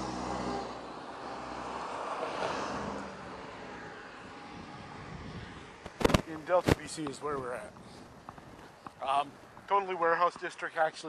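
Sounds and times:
vehicle passing: 0.0 - 9.7
low street hum: 0.0 - 11.0.

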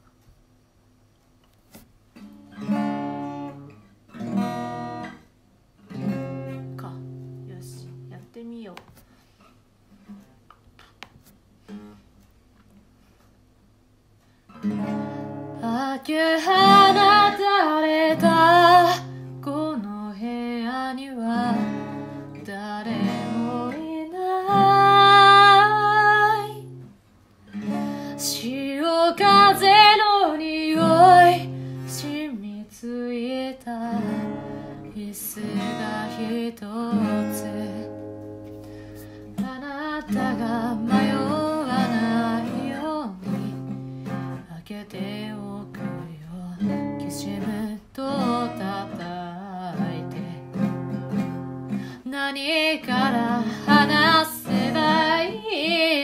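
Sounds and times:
acoustic guitar strumming: 2.1 - 8.3, 14.5 - 19.8, 21.2 - 32.4, 33.7 - 56.0
woman singing: 6.6 - 8.8, 15.6 - 26.8, 28.0 - 38.2, 39.4 - 50.9, 51.9 - 56.0.

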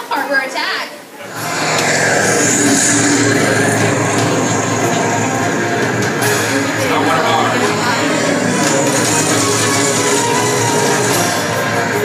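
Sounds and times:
action film music over speakers: 1.3 - 12.0.

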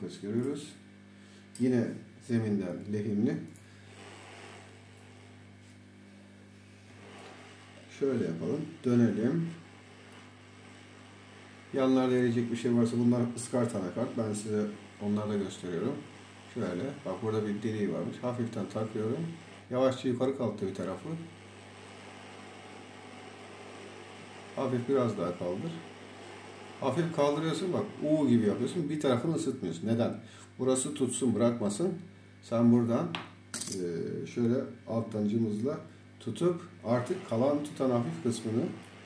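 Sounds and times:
low electrical hum: 0.0 - 39.0
hot air hissing: 3.7 - 5.8, 6.5 - 19.7.

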